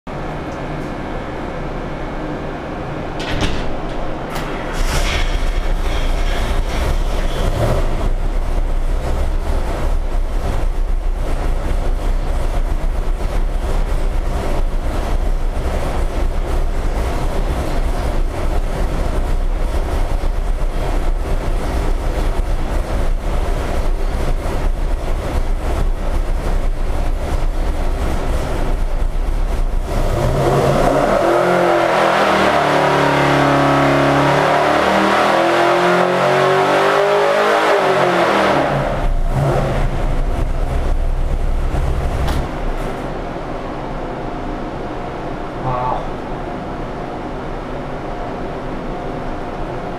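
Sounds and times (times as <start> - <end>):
engine revving on dynamometer: 4.8 - 10.9, 29.5 - 42.4.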